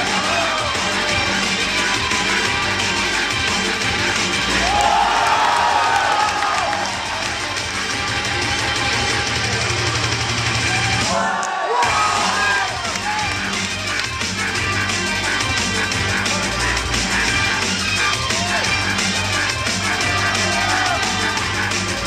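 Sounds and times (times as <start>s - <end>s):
music with steady bass beat: 0.0s - 22.0s
crowd cheering and whooping: 4.5s - 7.8s, 11.0s - 13.3s, 19.9s - 21.5s.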